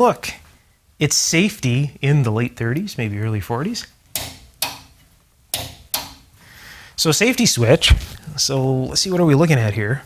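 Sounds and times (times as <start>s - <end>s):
switch clicking: 4.1s - 6.2s.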